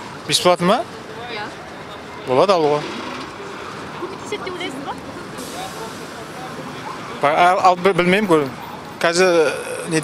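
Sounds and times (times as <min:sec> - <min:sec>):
faint voices: 0:00.2 - 0:10.0
passing traffic hiss: 0:02.3 - 0:08.7.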